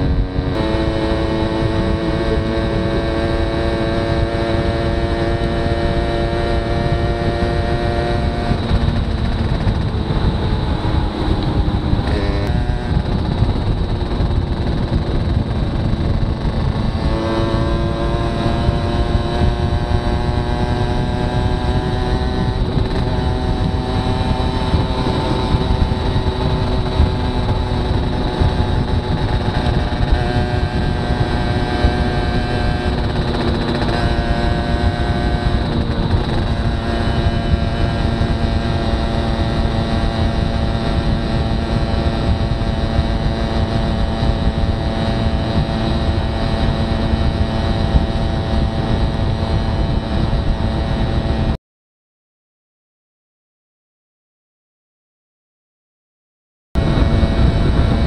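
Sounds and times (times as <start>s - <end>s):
wind and road noise: 0.0s - 51.6s, 56.8s - 58.0s
moped two-stroke engine running: 7.2s - 17.8s, 18.4s - 50.4s.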